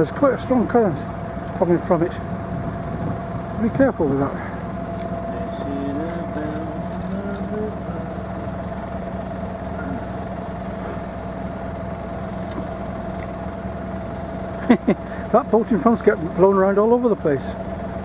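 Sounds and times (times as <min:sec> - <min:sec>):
boat engine humming: 0:00.0 - 0:18.0.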